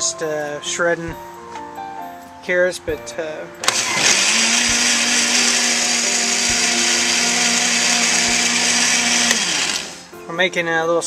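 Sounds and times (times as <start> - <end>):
blender motor spinning down: 3.6 - 10.1
blender running: 3.6 - 10.1.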